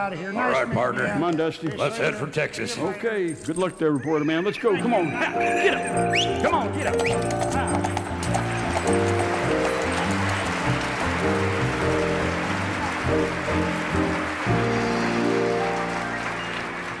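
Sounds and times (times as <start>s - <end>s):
audience applause: 4.8s - 17.0s
live band playing chords: 4.8s - 17.0s.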